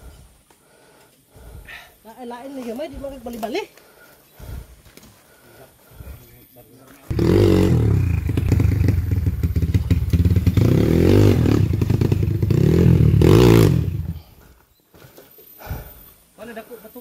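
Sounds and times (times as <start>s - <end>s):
dirt bike engine revving: 7.1s - 14.3s.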